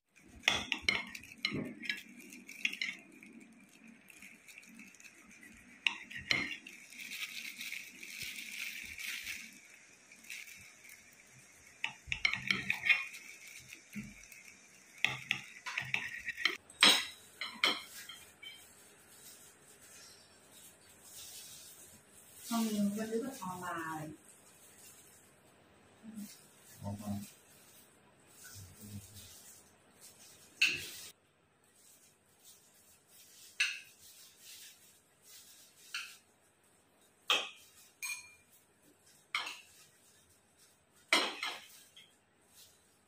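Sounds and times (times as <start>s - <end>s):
knife clinking on ceramic plate: 15.1s - 18.6s, 37.3s - 38.5s.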